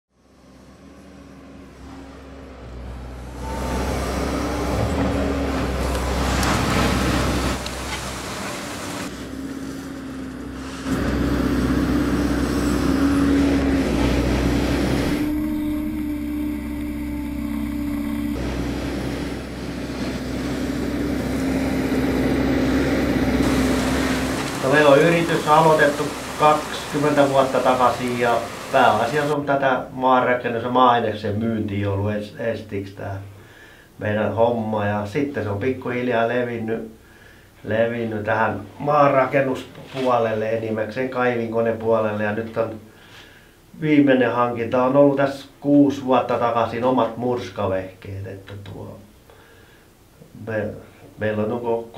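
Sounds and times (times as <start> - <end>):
excavator diesel engine droning: 0.1 - 29.4.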